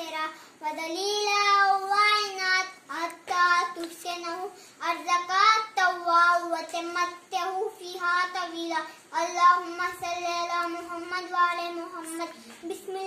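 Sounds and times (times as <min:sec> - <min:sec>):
boy chanting melodically: 0:00.0 - 0:13.0.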